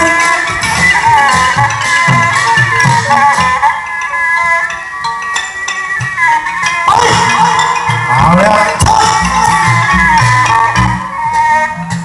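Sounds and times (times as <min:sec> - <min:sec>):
sustained stage music melody: 0:00.0 - 0:12.0.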